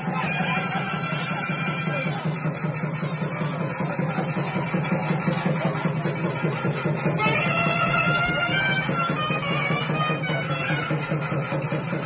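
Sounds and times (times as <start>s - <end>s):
rapid dense drumming: 0.0s - 12.0s
traditional festival music: 0.0s - 12.0s.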